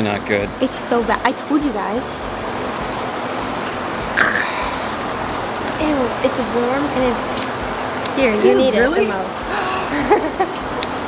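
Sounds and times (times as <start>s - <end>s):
running water hiss: 0.0s - 11.0s.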